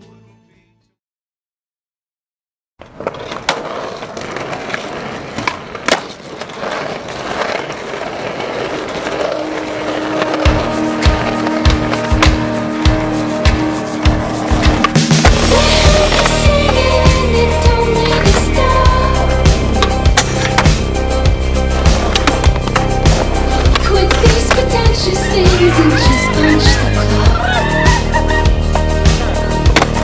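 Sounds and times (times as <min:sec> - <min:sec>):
skateboard clacks: 0:02.8 - 0:15.4, 0:21.8 - 0:28.1, 0:29.2 - 0:30.0
skateboard wheels rolling on concrete: 0:02.8 - 0:30.0
music with heavy bass beat: 0:11.1 - 0:30.0.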